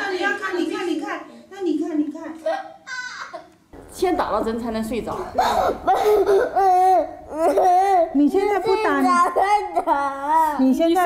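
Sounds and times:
woman speaking: 3.8s - 5.8s, 8.0s - 11.0s
girl crying and wailing: 5.6s - 10.7s.

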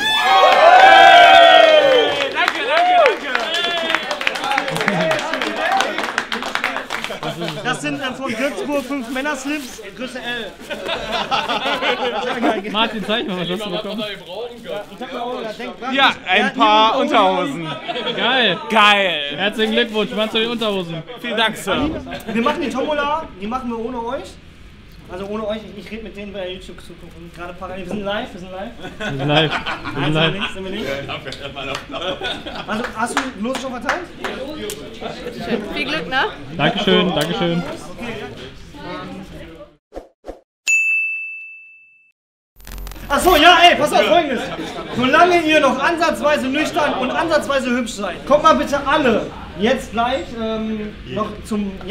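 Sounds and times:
men talking: 1.8s - 24.4s, 25.0s - 39.2s, 43.1s - 51.9s
background chatter: 3.2s - 39.8s, 43.1s - 51.9s
bell-like ding: 40.7s - 42.1s.

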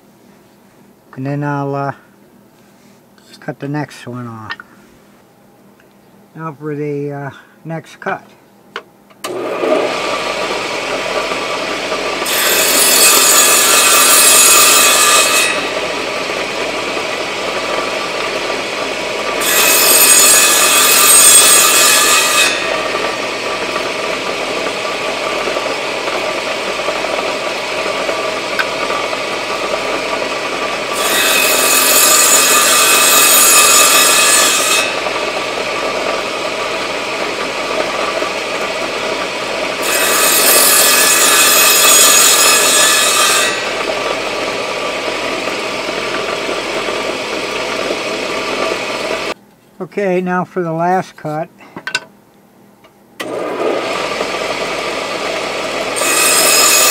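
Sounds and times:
saw blade cutting wood: 9.2s - 49.4s, 53.2s - 56.9s
table saw running: 9.2s - 49.4s, 53.2s - 56.9s.

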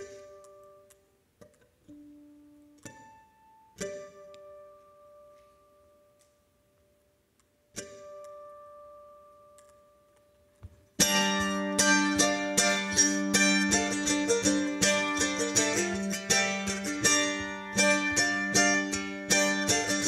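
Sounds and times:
mandolin picking fast tune: 11.0s - 20.0s.

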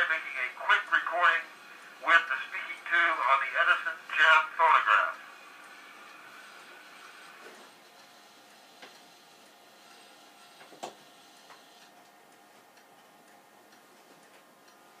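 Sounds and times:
phonograph surface hiss with ticking: 0.0s - 15.0s.

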